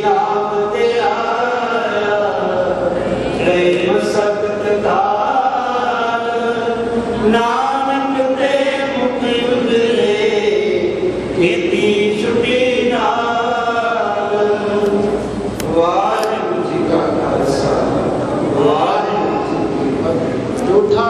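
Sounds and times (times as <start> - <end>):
men singing a hymn together: 0.0 - 17.0.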